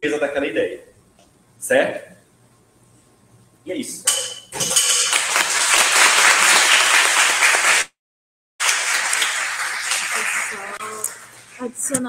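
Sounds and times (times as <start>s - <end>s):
audience applauding: 5.1s - 8.0s, 8.6s - 11.6s.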